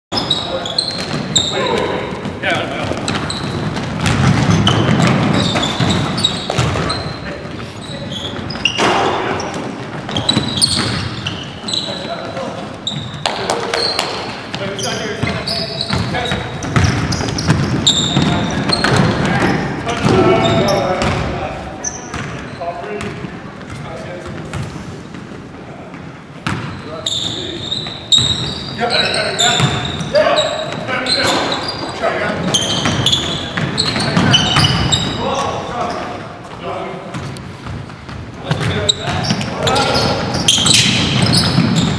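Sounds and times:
sneakers squeaking: 0.1 - 41.9
basketball bouncing: 0.9 - 7.2, 8.4 - 11.4, 12.0 - 21.4, 22.1 - 25.2, 26.4 - 26.8, 29.5 - 30.1, 32.4 - 35.2, 37.1 - 41.9.

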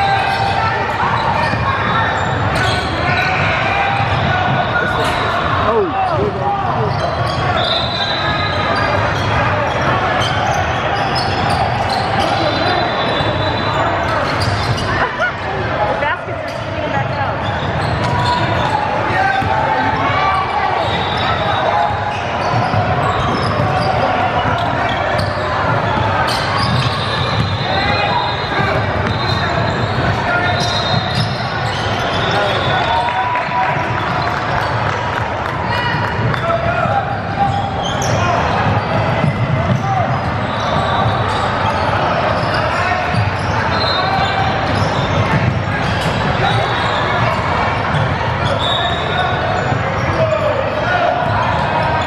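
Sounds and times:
sneaker squeaks: 0.0 - 15.3, 16.1 - 35.0, 35.7 - 52.0
basketball bouncing: 38.0 - 41.3.

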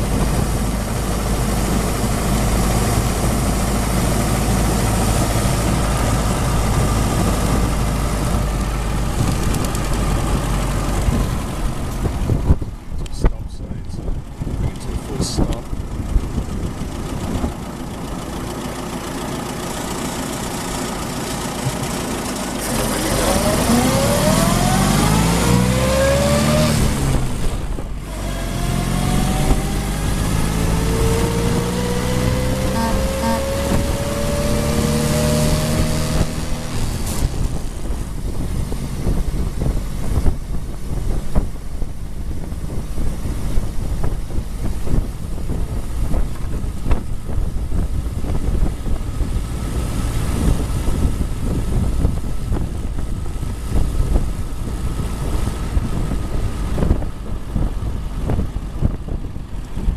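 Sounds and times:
car engine running: 0.0 - 59.9
wind and road noise: 0.0 - 59.9.

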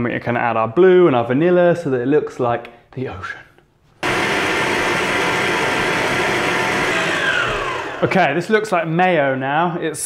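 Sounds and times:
stand mixer motor whirring: 4.0 - 8.3.

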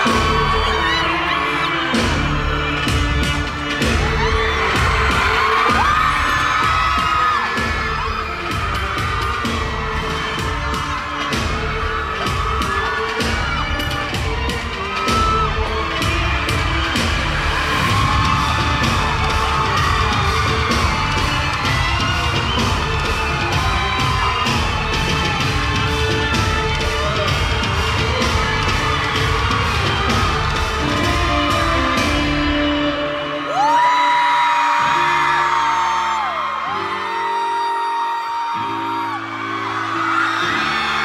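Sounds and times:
fans screaming: 0.0 - 41.0
live pop concert music: 0.0 - 41.0.

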